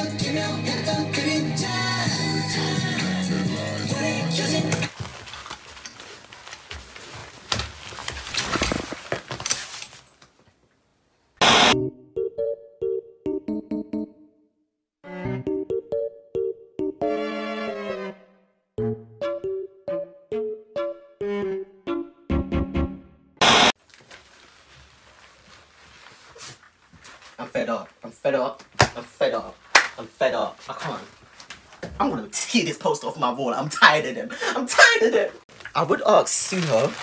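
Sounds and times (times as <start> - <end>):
tv static burst: 11.4 - 11.8, 23.4 - 23.8
keyboard music notes: 11.8 - 23.4.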